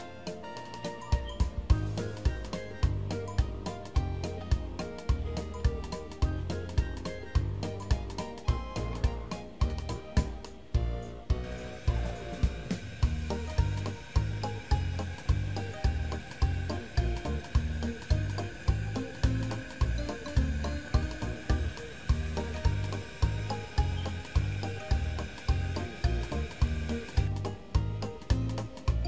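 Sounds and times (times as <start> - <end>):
background music with deep beat: 0.0 - 29.0.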